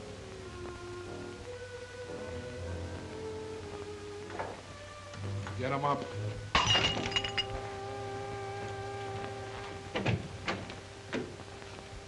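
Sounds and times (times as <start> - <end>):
glass shattering crash: 6.6 - 7.5.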